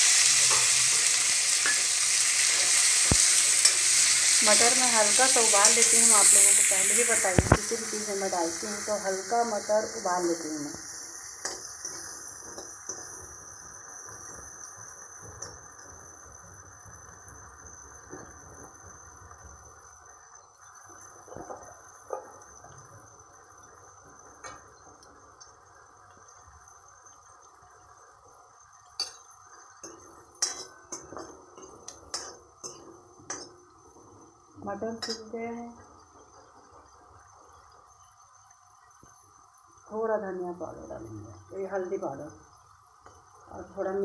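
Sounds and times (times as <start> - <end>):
peas sizzling in oil: 0.0 - 44.0
ladle scraping and clicking on pan: 0.1 - 4.4.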